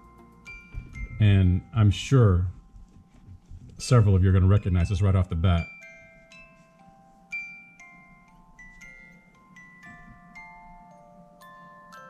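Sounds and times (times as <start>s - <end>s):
music box playing a tune: 0.0s - 12.0s.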